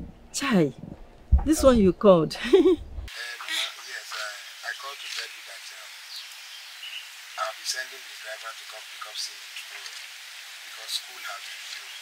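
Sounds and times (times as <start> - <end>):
outdoor background hiss: 0.0 - 12.0
woman speaking: 0.3 - 2.8.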